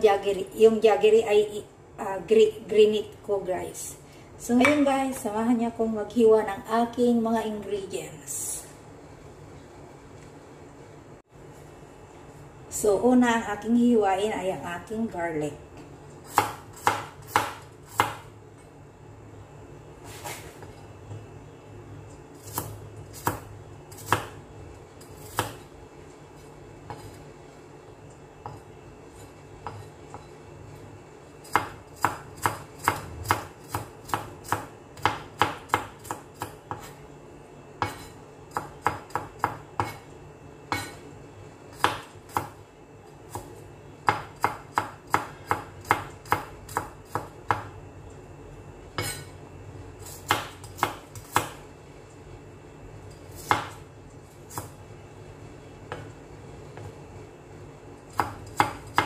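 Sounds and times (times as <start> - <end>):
knife chopping on plastic board: 16.3 - 18.2, 31.4 - 37.0, 37.8 - 40.0, 40.7 - 41.0, 41.7 - 42.6, 43.3 - 47.7, 50.2 - 51.6, 53.4 - 53.8.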